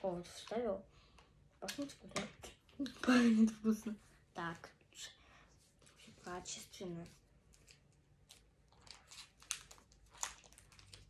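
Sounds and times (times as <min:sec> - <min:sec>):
packaging clicks and crinkles: 0:07.5 - 0:11.0.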